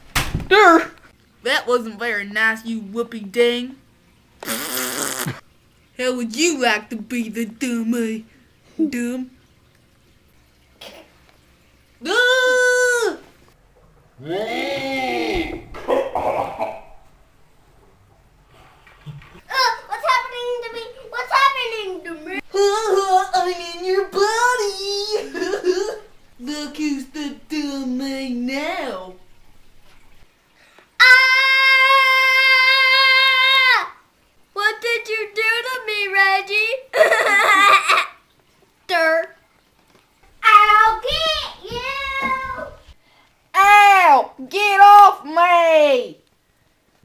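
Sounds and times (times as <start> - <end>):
child crying out: 12.0 - 13.2, 31.0 - 33.9.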